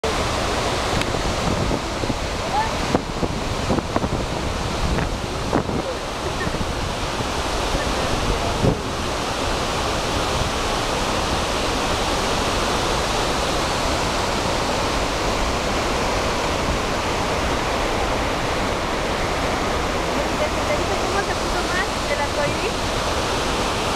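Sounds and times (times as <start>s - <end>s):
waterfall rushing: 0.0s - 23.9s.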